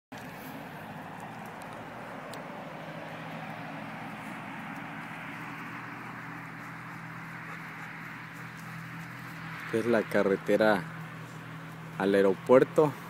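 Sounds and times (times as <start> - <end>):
distant highway traffic hiss: 0.2 - 13.0.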